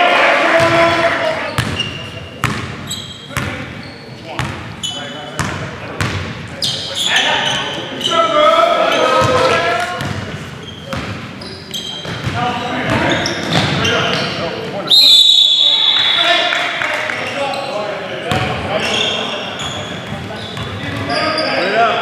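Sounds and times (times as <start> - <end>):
players' voices: 0.0 - 22.0
referee's whistle blast: 14.9 - 16.5.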